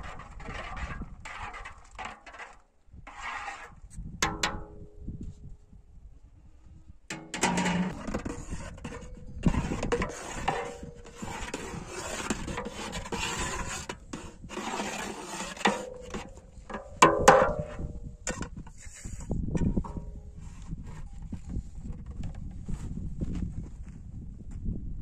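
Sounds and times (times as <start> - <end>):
metal spoon scraping a metal pot: 0.0 - 4.7, 7.1 - 21.2.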